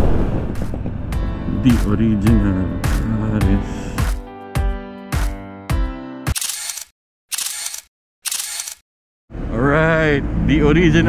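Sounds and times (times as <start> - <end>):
camera shutter clicks: 6.3 - 8.8.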